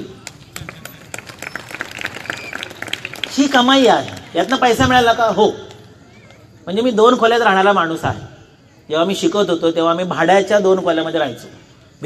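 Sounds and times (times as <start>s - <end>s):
light applause: 0.0s - 4.8s.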